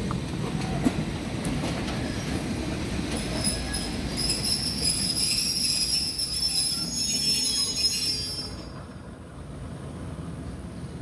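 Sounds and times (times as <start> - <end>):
train low rumble: 0.0 - 11.0
train wheels squealing: 3.1 - 8.9.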